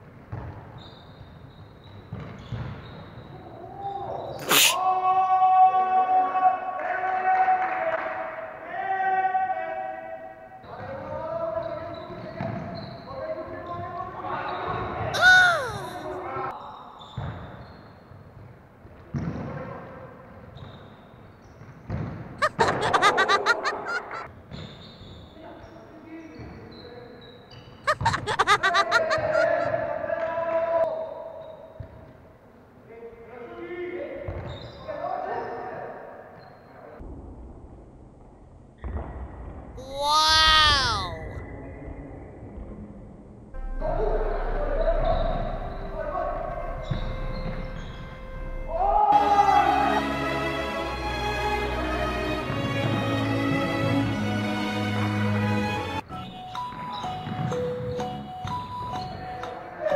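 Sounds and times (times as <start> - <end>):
football bouncing and being struck: 0.3 - 0.8, 1.9 - 3.0, 21.6 - 22.3, 44.8 - 48.1
players calling out: 22.4 - 24.3, 27.9 - 29.8, 39.8 - 41.4.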